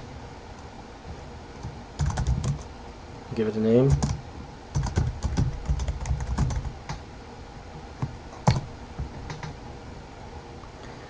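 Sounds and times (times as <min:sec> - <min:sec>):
typing on computer keyboard: 0:02.0 - 0:02.7, 0:03.9 - 0:07.0, 0:08.4 - 0:09.6.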